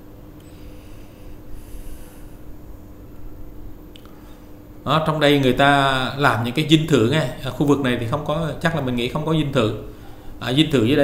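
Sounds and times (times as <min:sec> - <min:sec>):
faint steady hum: 0:00.0 - 0:11.0
hissing breath close to microphone: 0:00.4 - 0:02.5.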